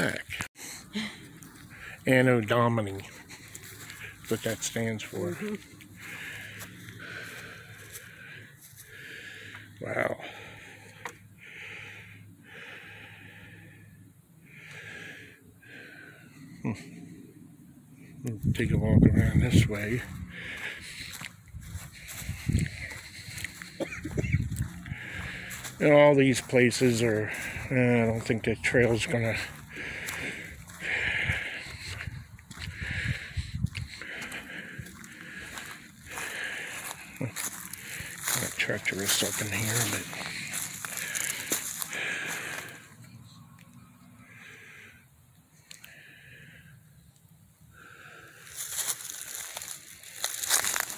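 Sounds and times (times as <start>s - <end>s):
person breathing close: 0.3s - 2.1s, 2.9s - 4.3s, 5.4s - 18.2s, 19.7s - 25.8s, 26.8s - 43.4s, 44.0s - 47.0s, 47.7s - 50.9s
footsteps crunching through dry leaves: 1.2s - 9.7s, 19.2s - 42.9s, 47.9s - 50.9s.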